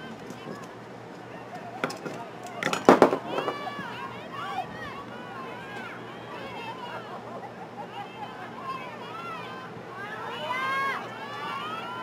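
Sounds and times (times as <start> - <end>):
distant girls shouting: 3.2 - 12.0.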